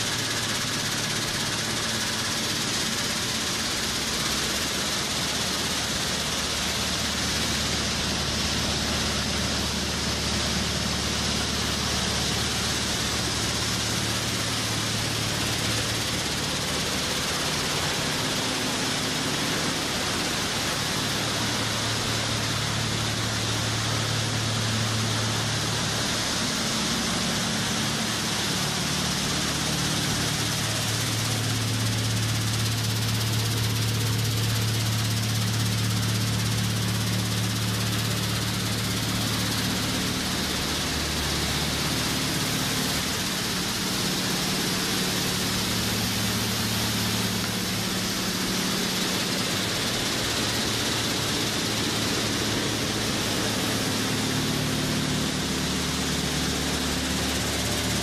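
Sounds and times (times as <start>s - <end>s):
loud even hiss: 0.0s - 58.0s
low machinery hum: 0.0s - 58.0s.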